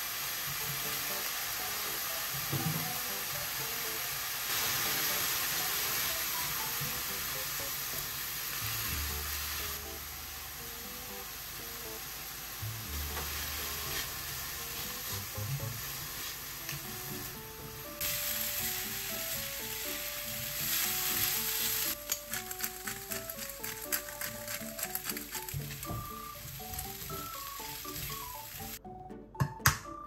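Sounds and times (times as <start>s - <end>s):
vegetables and sausage sizzling in pan: 0.0s - 28.8s.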